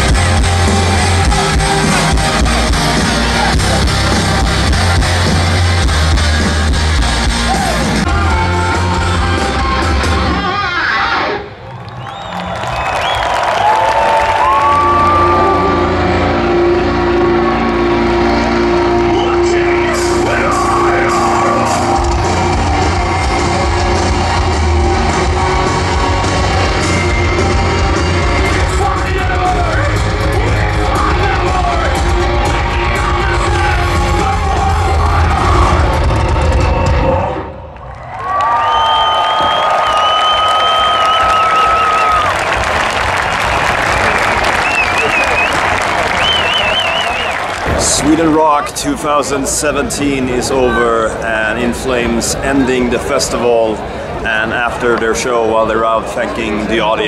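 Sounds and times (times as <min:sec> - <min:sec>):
metal band playing live: 0:00.0 - 0:11.5, 0:14.5 - 0:37.5
crowd cheering: 0:00.0 - 0:57.0
shrill whistles: 0:11.9 - 0:13.5, 0:38.6 - 0:42.3, 0:44.4 - 0:47.5.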